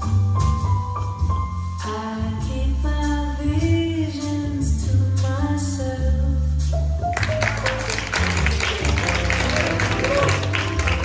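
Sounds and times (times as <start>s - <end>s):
clapping and applause: 7.1s - 11.0s.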